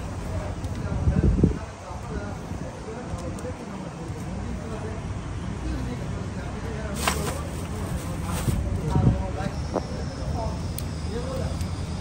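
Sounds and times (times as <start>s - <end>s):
indistinct background talking: 0.0s - 12.0s.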